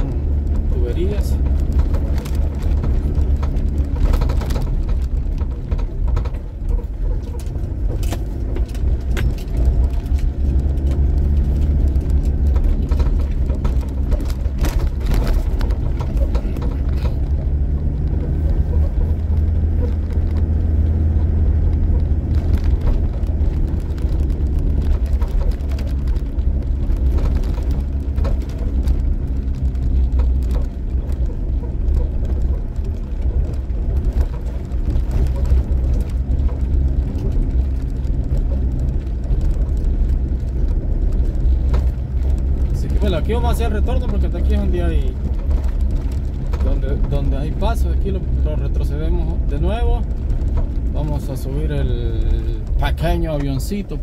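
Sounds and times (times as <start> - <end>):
engine and tyre rumble: 0.0 - 54.0
knocks and rattles: 0.0 - 54.0.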